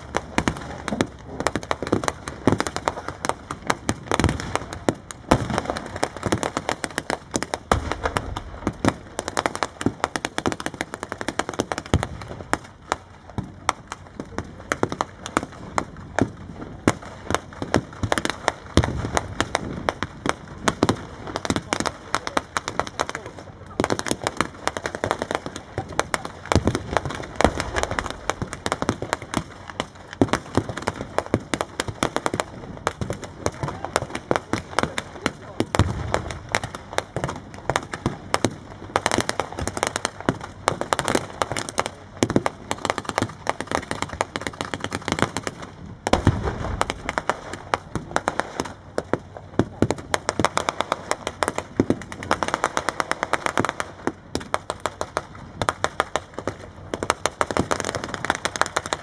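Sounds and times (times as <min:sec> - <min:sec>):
rifle shots crackling: 0:00.0 - 0:59.0
deep booms: 0:07.6 - 0:10.0, 0:26.5 - 0:30.7, 0:35.5 - 0:37.4, 0:46.0 - 0:48.2.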